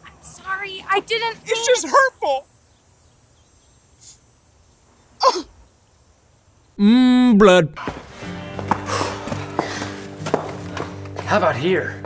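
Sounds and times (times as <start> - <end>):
quiet outdoor ambience: 0.0 - 12.0.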